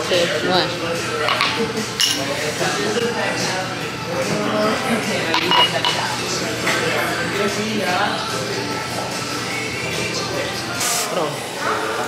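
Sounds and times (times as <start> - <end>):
people's voices: 0.0 - 12.0
glasses clinking: 1.2 - 2.4, 5.3 - 6.1.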